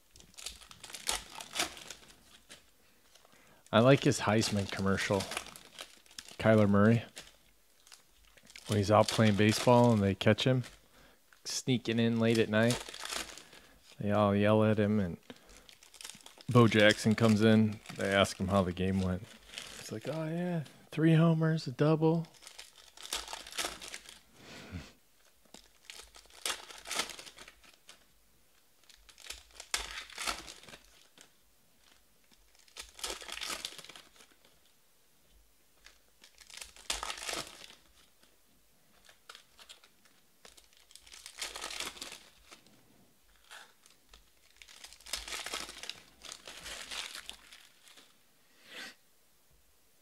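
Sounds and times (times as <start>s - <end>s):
wrappers tearing and crinkling: 0.1s - 20.3s, 22.2s - 24.3s, 25.2s - 28.1s, 28.8s - 34.7s, 35.8s - 42.7s, 43.3s - 48.2s.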